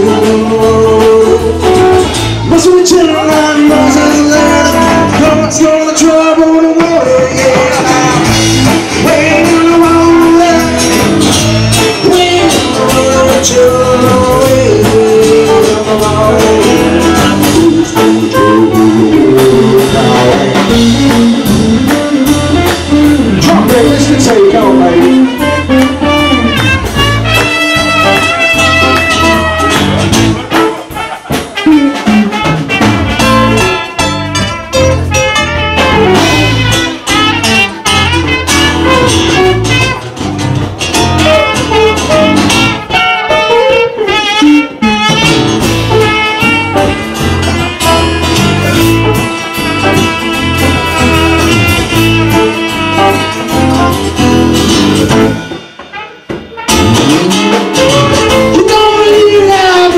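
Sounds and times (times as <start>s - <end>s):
electric bass: 0.0s - 43.1s, 44.7s - 55.7s, 56.7s - 59.9s
drum kit: 0.0s - 59.9s
electric guitar: 0.0s - 59.9s
live band playing: 0.0s - 59.9s
trumpet wavering melody: 24.3s - 40.2s, 41.0s - 59.9s.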